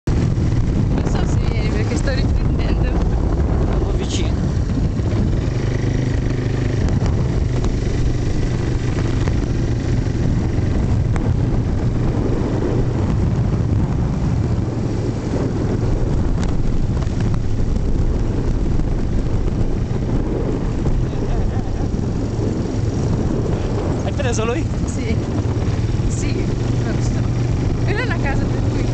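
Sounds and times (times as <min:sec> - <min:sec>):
quad bike engine running: 0:00.1 - 0:28.9.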